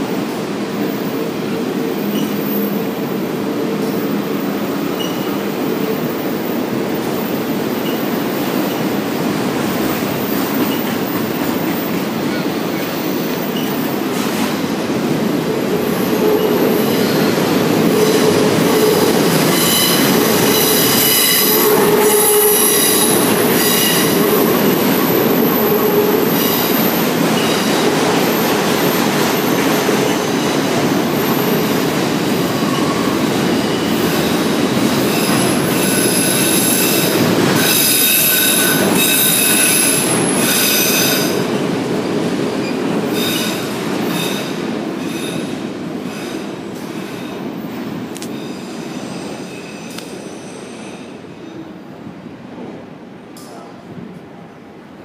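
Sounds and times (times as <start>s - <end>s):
freight train rumbling past: 0.0s - 55.0s
steel wheels squealing on rails: 1.9s - 3.0s, 3.8s - 9.0s, 9.6s - 14.7s, 15.4s - 41.6s, 42.6s - 51.8s.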